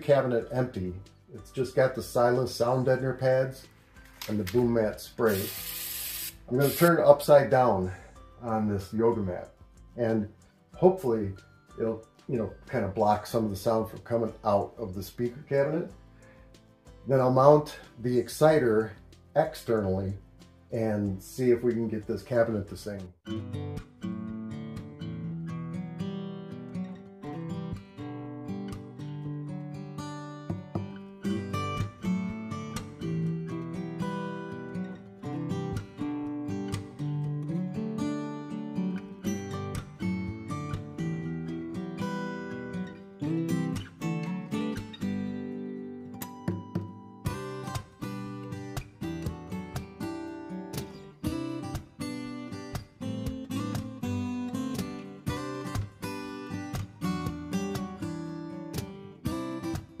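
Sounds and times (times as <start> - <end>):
acoustic guitar music: 0.0 - 60.0.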